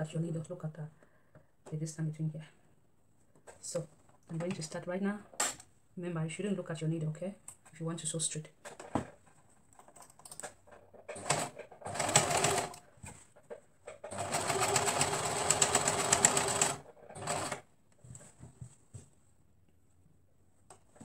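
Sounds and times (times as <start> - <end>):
electric sewing machine stitching: 11.1 - 12.8, 14.0 - 17.6.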